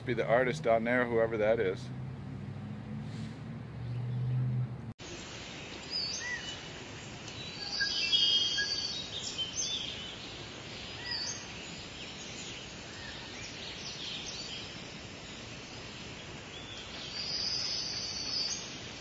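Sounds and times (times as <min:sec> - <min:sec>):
birds chirping and calling: 0:05.6 - 0:18.8.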